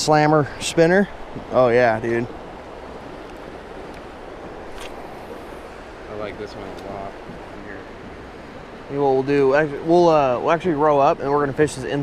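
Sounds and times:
wind on microphone: 0:00.0 - 0:09.3
river water rushing: 0:00.0 - 0:12.0.

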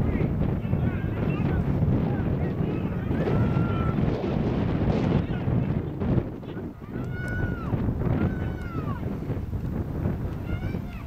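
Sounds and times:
distant shouts of people: 0:00.0 - 0:04.2, 0:06.4 - 0:09.3, 0:10.3 - 0:11.0
wind buffeting microphone: 0:00.0 - 0:11.0.

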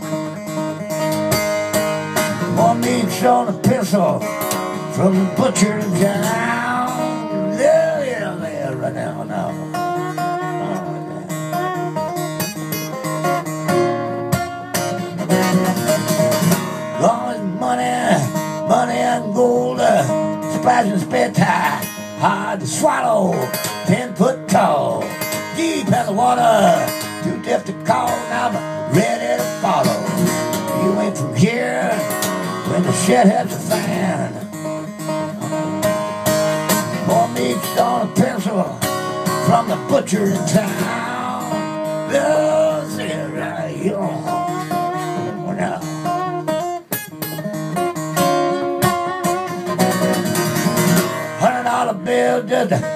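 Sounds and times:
acoustic guitar strumming: 0:00.0 - 0:52.9.

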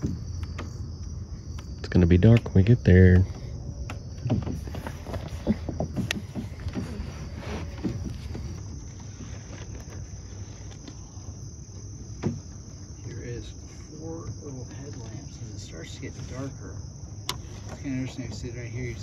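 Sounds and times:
high-pitched insect chorus: 0:00.0 - 0:19.0.

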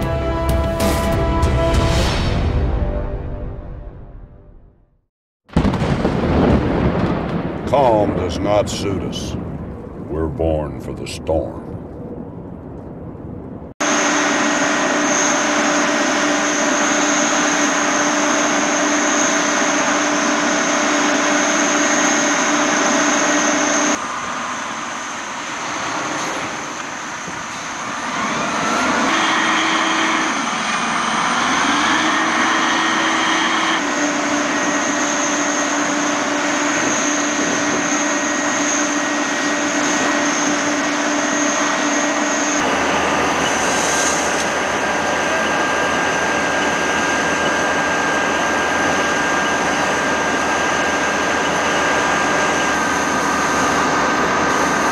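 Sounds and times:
fire truck engine and pump roaring: 0:07.0 - 0:54.9
water spraying: 0:42.6 - 0:44.8.

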